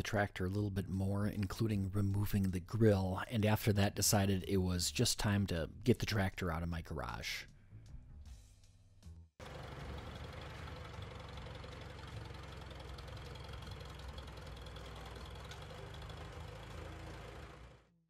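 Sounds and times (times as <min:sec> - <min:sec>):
tractor engine running: 0:09.4 - 0:17.9.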